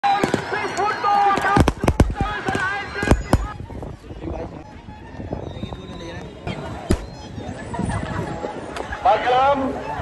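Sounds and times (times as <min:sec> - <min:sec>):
crowd shouting: 0:00.0 - 0:03.7
firecrackers banging: 0:01.2 - 0:03.5.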